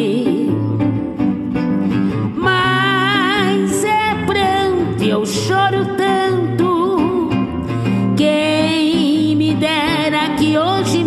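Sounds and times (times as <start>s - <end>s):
instrumental accompaniment with bass line: 0.0s - 11.0s.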